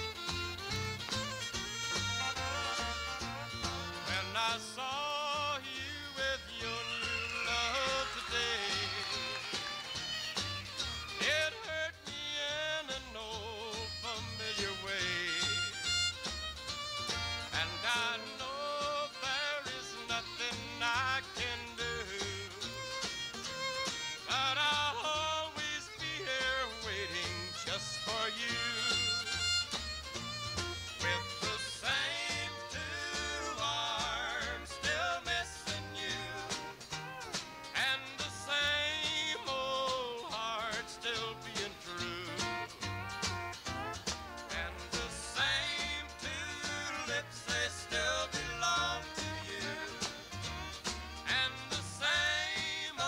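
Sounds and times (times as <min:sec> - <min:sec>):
bass notes: 0:00.0 - 0:53.0
country band playing live: 0:00.0 - 0:53.0.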